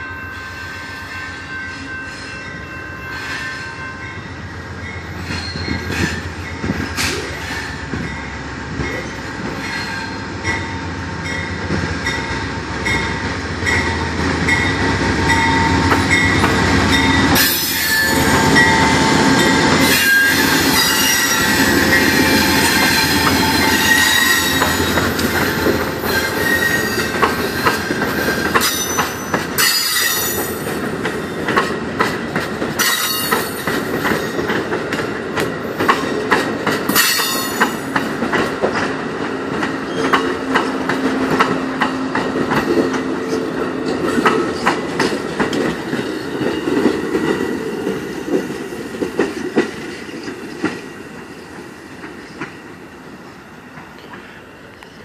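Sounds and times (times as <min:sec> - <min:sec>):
crossing bell dinging: 0:00.0 - 0:30.7, 0:32.8 - 0:34.5, 0:36.9 - 0:38.2
diesel locomotive engine rumble: 0:00.0 - 0:55.0
wheels clacking on rail joints: 0:04.8 - 0:52.6
high wheel squeal: 0:05.2 - 0:06.2, 0:17.4 - 0:30.5.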